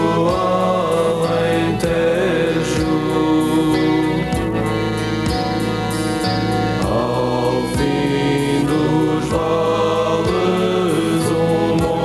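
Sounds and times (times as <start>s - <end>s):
person singing: 0.0s - 5.0s, 6.8s - 12.0s.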